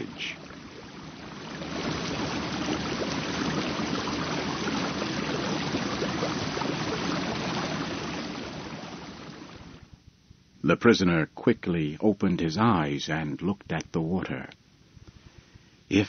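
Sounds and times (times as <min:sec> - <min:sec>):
river water rushing: 0:00.0 - 0:09.8.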